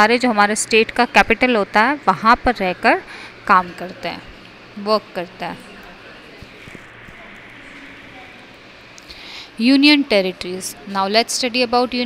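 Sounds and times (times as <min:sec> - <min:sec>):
faint hiss: 0:06.5 - 0:10.0.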